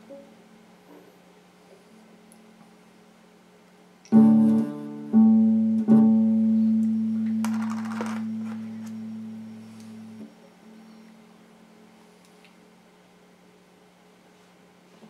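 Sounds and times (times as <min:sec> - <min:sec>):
amplifier hum: 0:04.0 - 0:12.9
electric guitar notes: 0:04.1 - 0:10.8.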